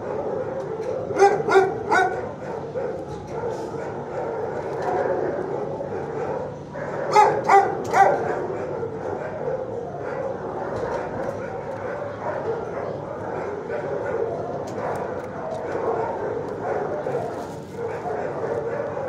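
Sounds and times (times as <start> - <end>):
many dogs barking and yipping: 0.0 - 19.0
dog barking in quick runs: 0.7 - 9.4.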